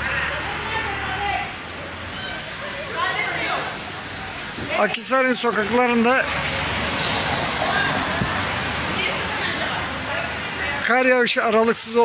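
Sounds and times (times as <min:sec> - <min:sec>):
wet snow falling on slushy street: 0:00.2 - 0:10.6.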